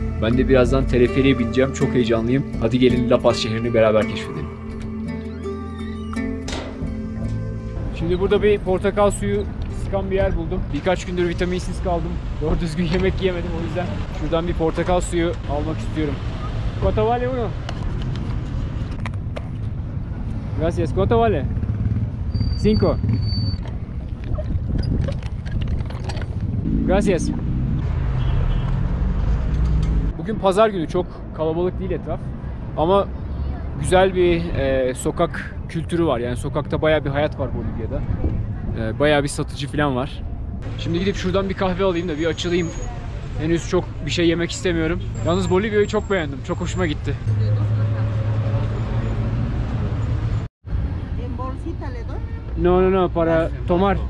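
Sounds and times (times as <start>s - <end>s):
street traffic: 0.0s - 54.0s
wind on microphone: 23.6s - 26.7s.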